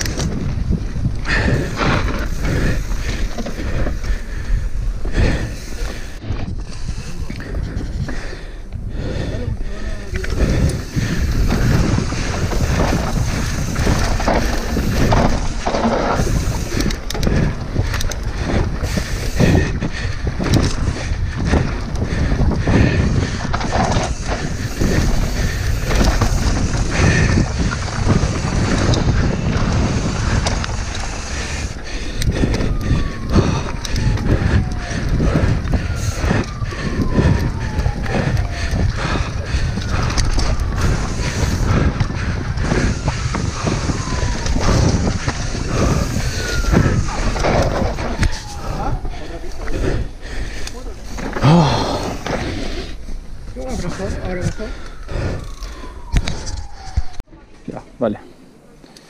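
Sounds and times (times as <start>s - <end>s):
bike tyre roar: 0.0s - 57.2s
wind on microphone: 0.0s - 57.3s
faint falling whistle-like tone: 54.2s - 57.2s.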